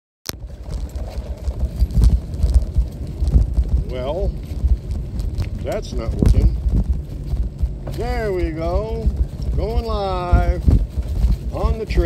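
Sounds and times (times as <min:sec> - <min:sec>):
microphone rubbing against clothing: 0:00.4 - 0:12.0.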